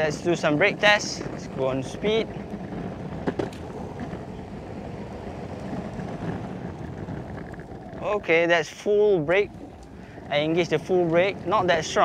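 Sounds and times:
skateboard wheels rolling on concrete: 0:00.0 - 0:12.0
wind on microphone: 0:00.0 - 0:12.0.

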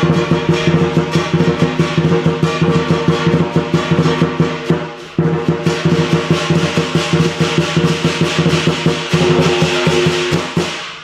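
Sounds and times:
crashing cymbals: 0:00.0 - 0:11.0
large drum beaten fast: 0:00.0 - 0:11.0
ringing gong: 0:09.0 - 0:10.7.

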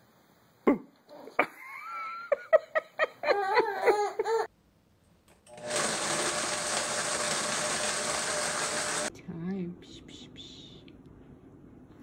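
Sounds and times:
small motor whirring: 0:05.5 - 0:09.1.

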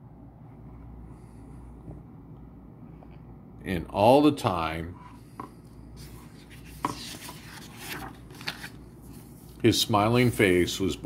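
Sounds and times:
paper page turning: 0:06.0 - 0:09.7.

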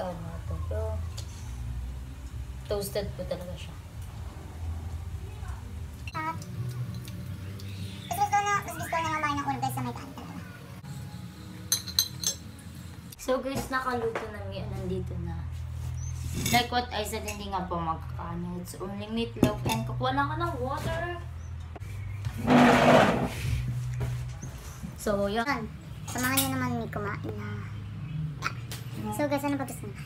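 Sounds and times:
metal tongs clinking: 0:11.7 - 0:12.5
metal chair scraping: 0:22.3 - 0:23.7.

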